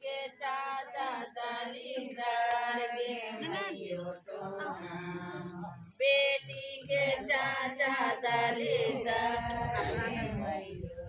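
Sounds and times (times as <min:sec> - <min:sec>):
women singing folk song: 0:00.0 - 0:11.0.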